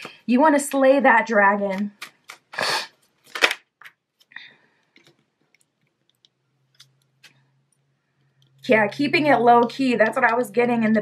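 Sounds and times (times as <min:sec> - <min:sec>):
cards rustling and slapping: 0:01.7 - 0:06.2.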